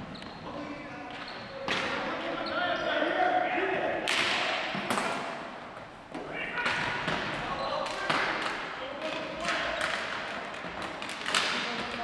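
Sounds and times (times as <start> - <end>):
hockey sticks and ball clacking: 0.0 - 2.6, 4.0 - 12.0.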